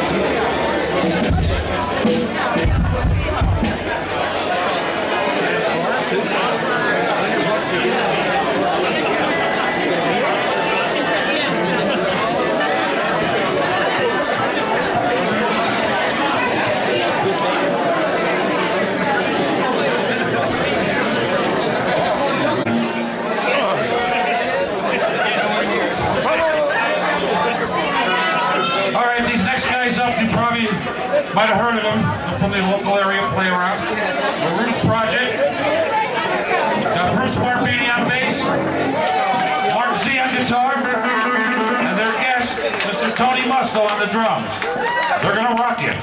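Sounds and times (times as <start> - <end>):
crowd chatter: 0.0 - 46.0.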